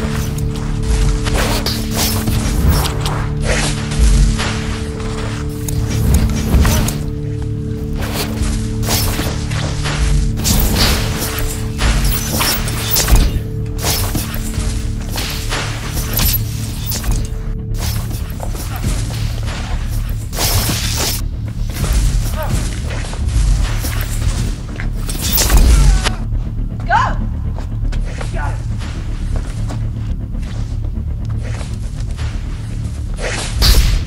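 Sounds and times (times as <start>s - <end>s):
dramatic film score drone: 0.0s - 34.0s
impact and blast effects: 33.5s - 34.0s.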